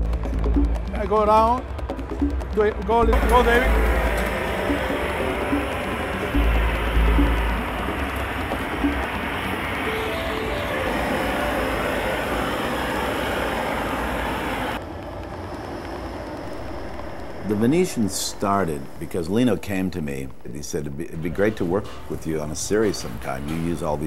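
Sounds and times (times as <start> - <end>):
background music: 0.0 - 14.5.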